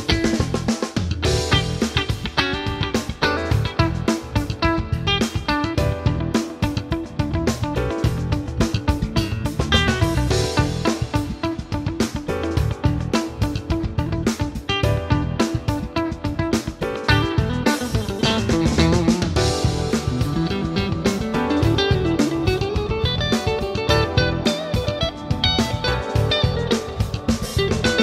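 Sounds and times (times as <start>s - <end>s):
steady drum beat: 0.0s - 28.0s
clean electric guitar melody: 1.2s - 28.0s.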